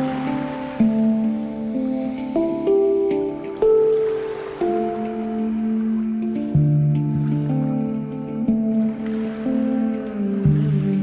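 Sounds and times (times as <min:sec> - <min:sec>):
handpan melody: 0:00.0 - 0:11.0.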